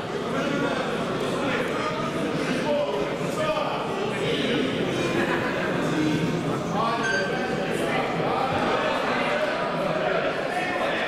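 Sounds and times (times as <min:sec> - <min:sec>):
crowd chatter in echoing hall: 0:00.0 - 0:11.0.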